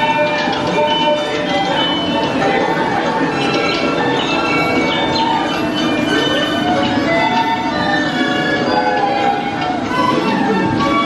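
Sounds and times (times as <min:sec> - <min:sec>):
music: 0:00.0 - 0:11.0
ringing bell-like chimes: 0:00.0 - 0:11.0.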